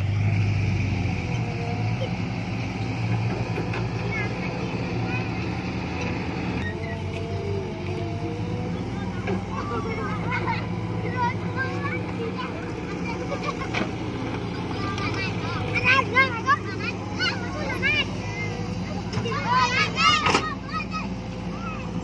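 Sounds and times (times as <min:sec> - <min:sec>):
excavator engine humming: 0:00.0 - 0:22.0
children calling out: 0:01.4 - 0:22.0.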